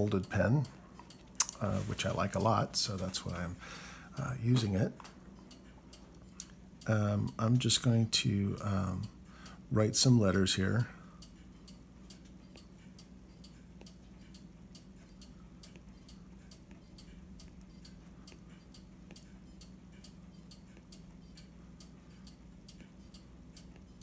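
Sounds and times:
faint light ticking: 0.0 - 24.0
low steady hum: 0.0 - 24.0.

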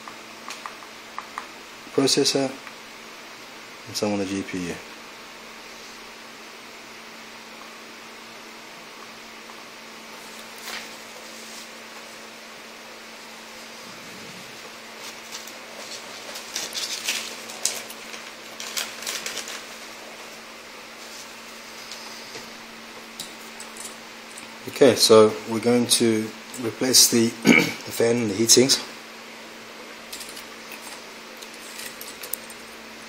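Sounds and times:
low room hum: 0.0 - 33.0.

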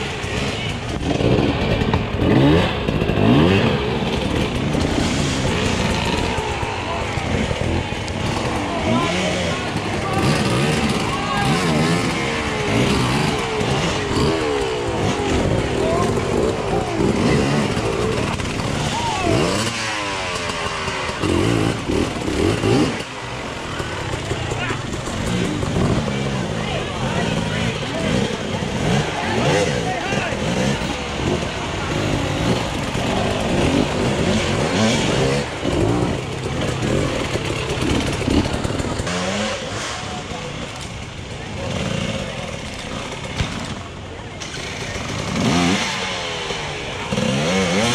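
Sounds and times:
dirt bike engines revving: 0.0 - 47.9
spectators' voices: 0.0 - 47.9.

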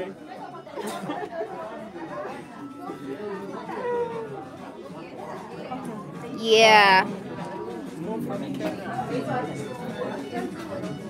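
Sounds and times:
low chatter of people: 0.0 - 11.0.

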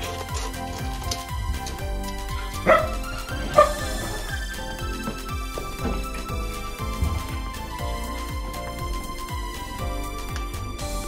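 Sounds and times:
background music with beat: 0.0 - 11.0
dog barking: 2.6 - 4.3.

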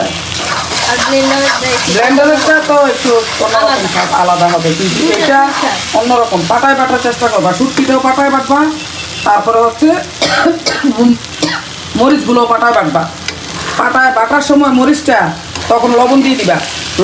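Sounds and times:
onions sizzling in a pan: 0.0 - 17.0
spatula scraping a pan: 0.3 - 5.9.

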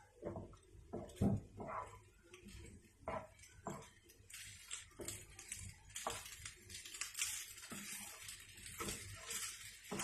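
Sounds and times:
spatula scraping pasta in pan: 0.2 - 10.0.

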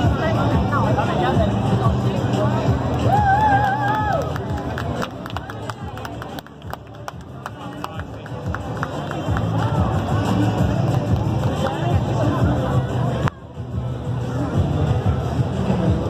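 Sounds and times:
crowd chatter: 0.0 - 16.0.

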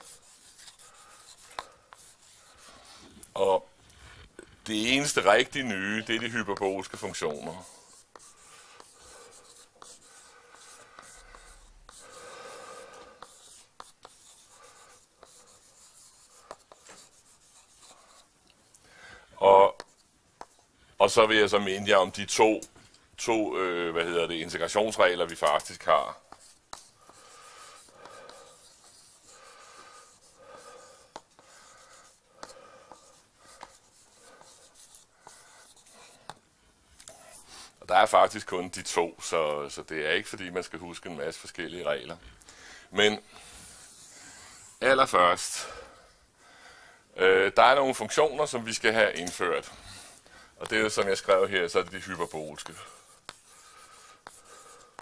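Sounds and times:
chalk tapping on blackboard: 0.0 - 2.8, 6.1 - 18.3, 19.7 - 20.7, 24.0 - 36.4, 50.6 - 55.0
chalk scratching on blackboard: 0.0 - 3.2, 4.9 - 18.4, 19.6 - 20.7, 23.7 - 36.4, 37.1 - 39.0, 39.7 - 42.2, 42.9 - 45.7, 47.7 - 55.0.

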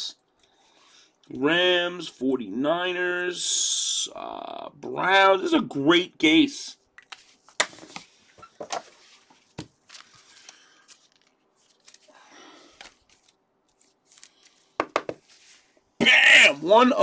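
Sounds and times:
cards rustling: 7.0 - 15.8
trading cards clicking and tapping: 14.2 - 15.2.

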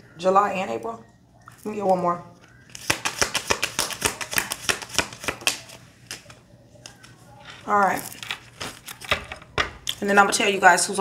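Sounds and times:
cards tapping and flicking: 2.7 - 7.2.

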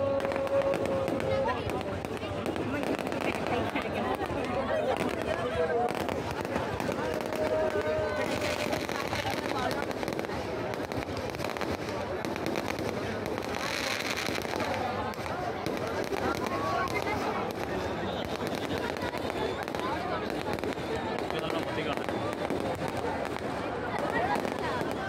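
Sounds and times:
crowd talking and shouting: 0.0 - 25.0
fireworks popping and crackling: 0.0 - 25.0.

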